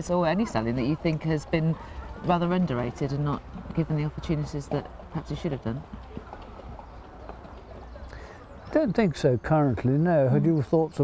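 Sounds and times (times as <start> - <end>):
hooves clopping on dirt: 0.1 - 11.0.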